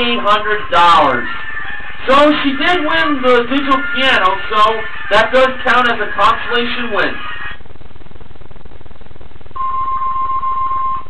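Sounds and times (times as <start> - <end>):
low background hum: 0.0 - 11.0
long electronic beep: 9.6 - 11.0.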